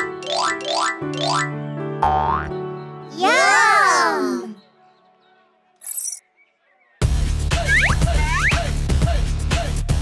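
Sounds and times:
children's background music: 0.0 - 5.2.

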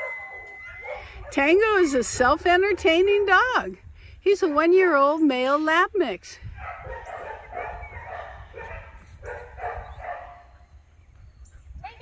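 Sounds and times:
dog barking: 6.6 - 10.6.

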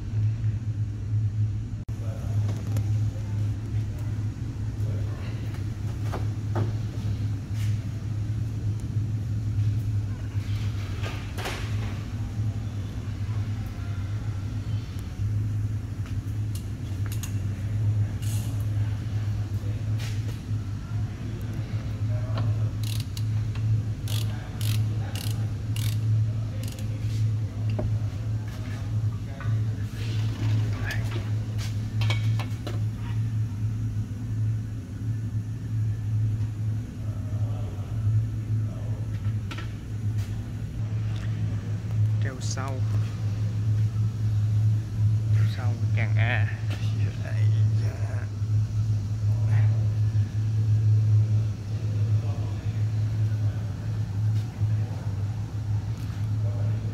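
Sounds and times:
steady low hum: 0.0 - 56.9.

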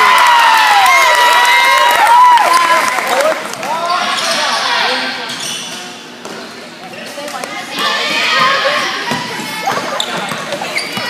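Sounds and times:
spectators' voices echoing: 2.2 - 11.0.

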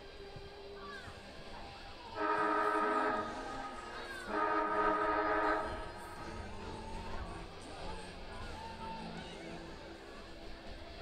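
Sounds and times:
siren horn tone: 2.2 - 6.4.

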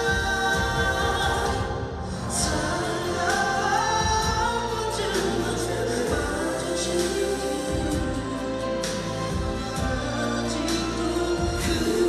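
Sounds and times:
instrumental accompaniment: 0.0 - 12.0
man singing pop ballad: 0.0 - 12.0.

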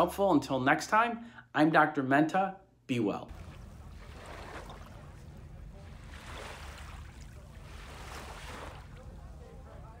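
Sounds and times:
sea waves at shore: 3.3 - 9.6.

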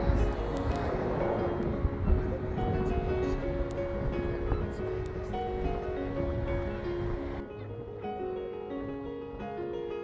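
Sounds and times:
low rumble: 0.0 - 7.4.

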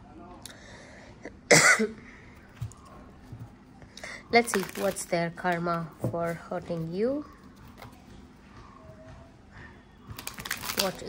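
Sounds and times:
person coughing: 1.5 - 2.0.

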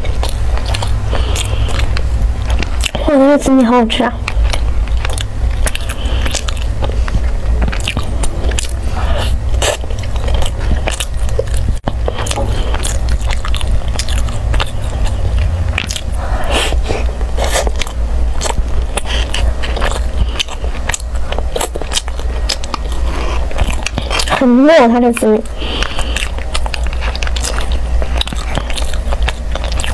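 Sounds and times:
chewing sticky rice: 0.0 - 29.9
steady low hum: 0.0 - 29.9.

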